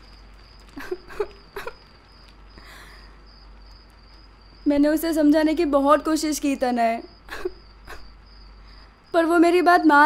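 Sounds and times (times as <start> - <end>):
cricket trill: 0.0 - 10.0
woman breathing distressed: 2.6 - 3.2.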